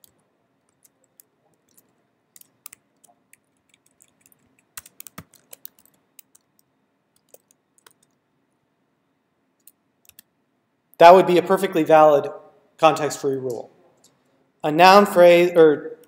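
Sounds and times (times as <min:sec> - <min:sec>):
computer keyboard keystrokes: 0:00.0 - 0:08.2, 0:09.6 - 0:10.3.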